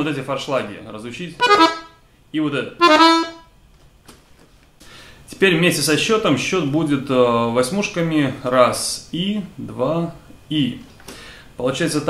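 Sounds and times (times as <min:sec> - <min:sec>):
accordion held note: 0:01.4 - 0:02.0, 0:02.8 - 0:03.4.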